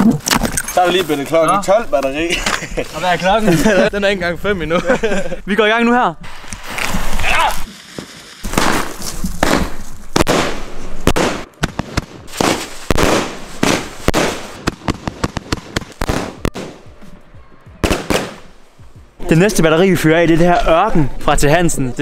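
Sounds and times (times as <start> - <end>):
firework battery shots: 6.3 - 16.9, 17.8 - 18.5
firework crackle: 6.3 - 16.9, 17.8 - 18.5.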